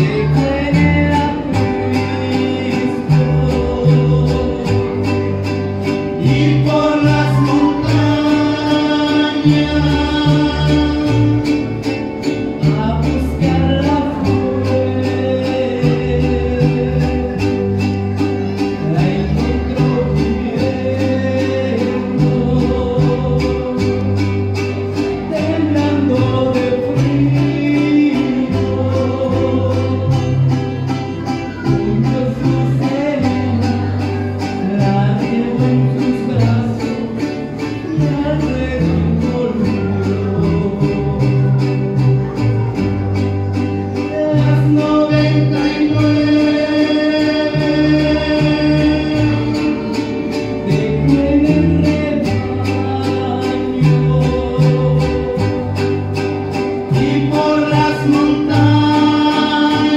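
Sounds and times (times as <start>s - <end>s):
group of singers: 0.0s - 42.3s, 44.0s - 59.9s
bass line: 0.0s - 59.9s
strummed acoustic guitars: 0.0s - 59.9s.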